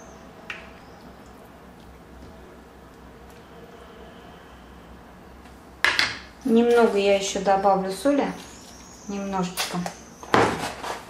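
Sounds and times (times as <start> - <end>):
faint low hum: 0.0 - 10.1.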